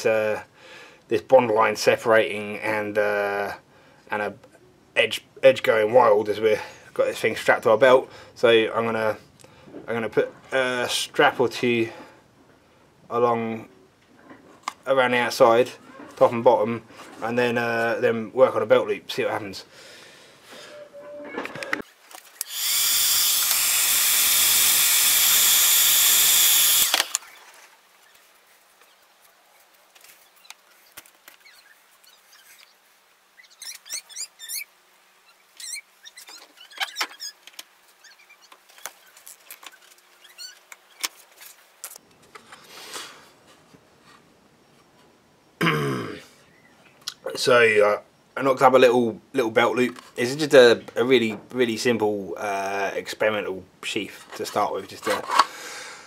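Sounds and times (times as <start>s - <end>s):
power tool running: 22.4s - 27.2s
hard plastic pieces handled: 38.5s - 42.6s.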